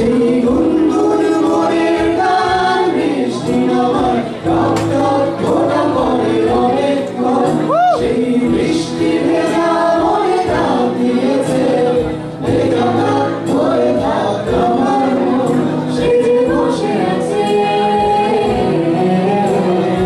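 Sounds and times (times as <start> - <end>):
group singing through speakers: 0.0 - 20.0
guitar: 0.0 - 20.0
keyboard: 0.0 - 20.0.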